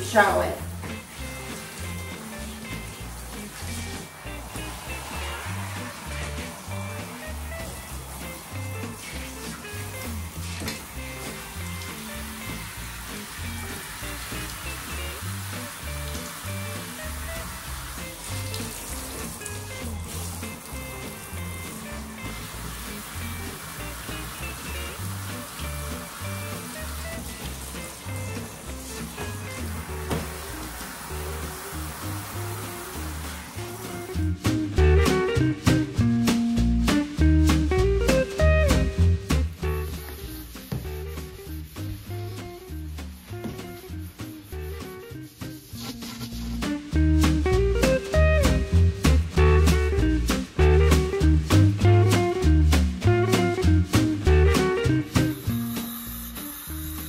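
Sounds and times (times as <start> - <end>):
background music with bass line: 0.0 - 57.0
shower head spraying water: 0.0 - 57.0.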